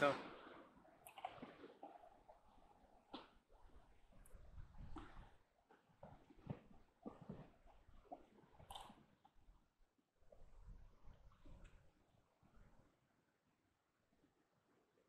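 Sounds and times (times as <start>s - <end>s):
horses thumping softly: 0.0s - 12.1s.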